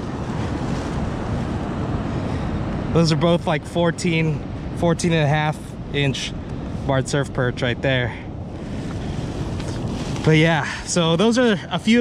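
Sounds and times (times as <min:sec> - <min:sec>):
ocean surf on beach: 0:00.0 - 0:12.0
wind buffeting microphone: 0:00.0 - 0:12.0.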